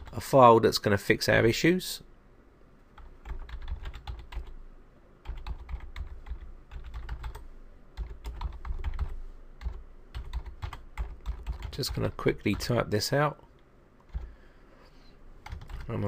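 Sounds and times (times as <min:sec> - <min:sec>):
computer keyboard typing: 0:03.0 - 0:04.6, 0:05.2 - 0:07.4, 0:08.0 - 0:12.8, 0:13.5 - 0:14.3, 0:15.4 - 0:15.9.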